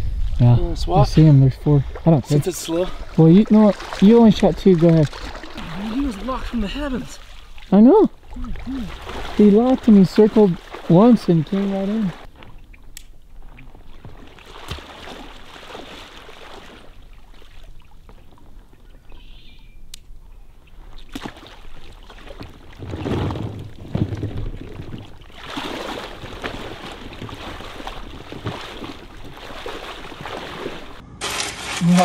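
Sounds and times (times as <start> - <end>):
water sloshing around waders: 1.6 - 19.5, 20.1 - 32.0.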